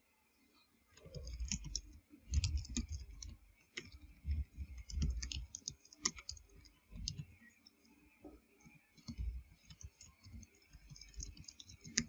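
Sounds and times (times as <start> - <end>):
computer keyboard keystrokes clicking: 1.0 - 7.3, 9.0 - 12.0.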